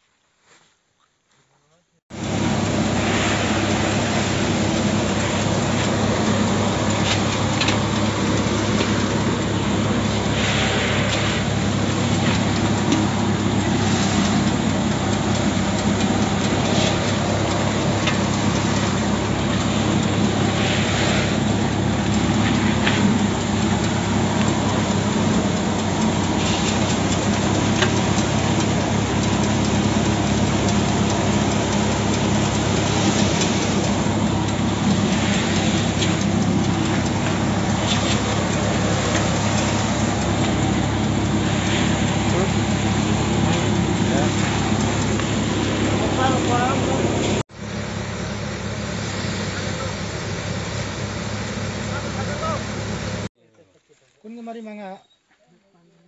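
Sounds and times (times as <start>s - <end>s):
thresher engine running: 2.1s - 53.3s
grain pouring into metal basin: 2.2s - 47.1s.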